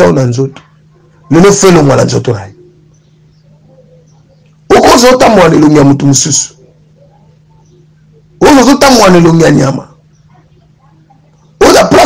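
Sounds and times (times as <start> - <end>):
faint low hum: 0.0 - 12.0
man's loud raised voice: 1.3 - 2.5, 4.7 - 6.6, 8.4 - 9.9, 11.6 - 12.0.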